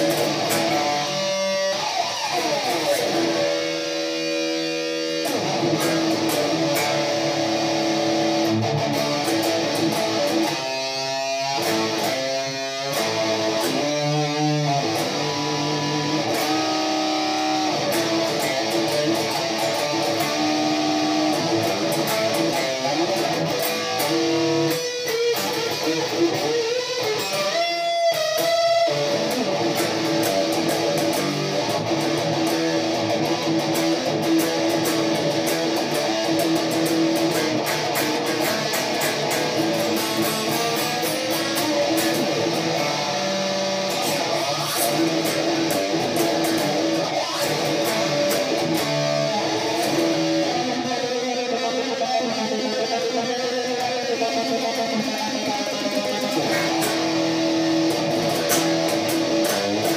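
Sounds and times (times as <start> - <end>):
electric guitar solo: 0.0 - 59.9.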